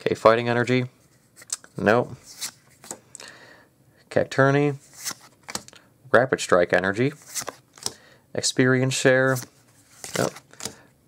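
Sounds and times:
trading cards sliding swishes: 0:02.2 - 0:03.0, 0:04.8 - 0:05.7, 0:07.2 - 0:08.0, 0:09.2 - 0:10.8.

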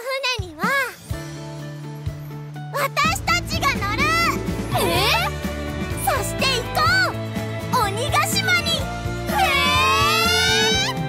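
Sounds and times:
background music: 0:00.0 - 0:11.0
girls crying out in surprise: 0:09.3 - 0:11.0.

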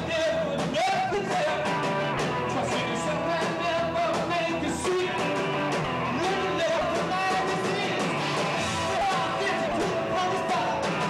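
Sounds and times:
drums: 0:00.0 - 0:11.0
electric bass: 0:00.0 - 0:11.0
electric guitar: 0:00.0 - 0:11.0
keyboards: 0:00.0 - 0:11.0
man singing: 0:00.0 - 0:11.0.

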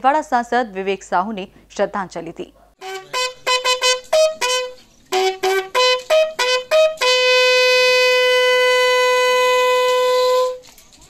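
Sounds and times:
bugle holding a long note: 0:02.8 - 0:10.6.

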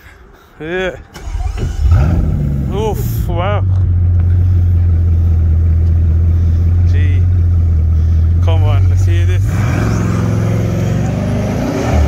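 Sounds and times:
car engine idling deep hum: 0:01.7 - 0:11.7.

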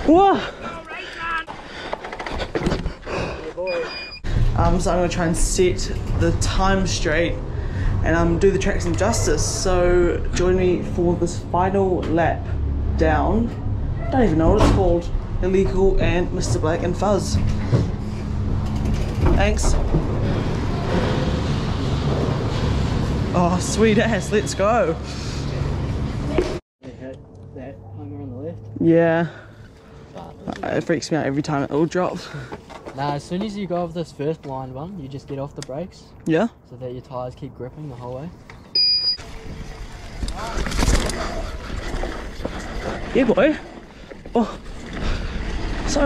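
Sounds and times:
bike rattling: 0:00.0 - 0:03.4, 0:15.5 - 0:24.1, 0:38.5 - 0:46.0
machinery rumble: 0:04.3 - 0:26.6
bike tyres on dirt trail: 0:39.2 - 0:46.0.

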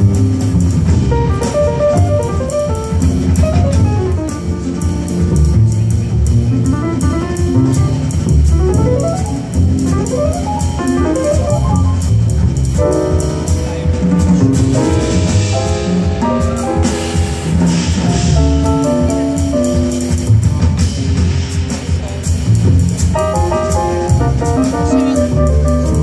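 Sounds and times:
grand piano runs: 0:00.0 - 0:20.6
drum kit cymbals: 0:00.0 - 0:26.0
plucked double bass: 0:00.0 - 0:26.0.

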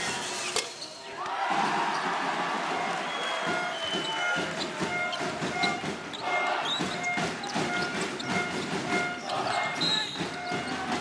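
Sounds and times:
crowd noise: 0:00.0 - 0:11.0
sneakers squeaking: 0:02.8 - 0:11.0.

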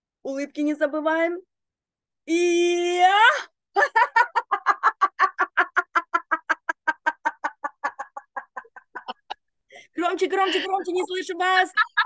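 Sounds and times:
woman laughing rhythmically: 0:03.8 - 0:12.0.

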